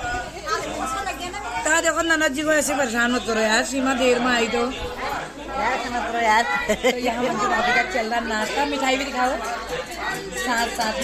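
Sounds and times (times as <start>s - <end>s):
group chatter: 0.0s - 11.0s.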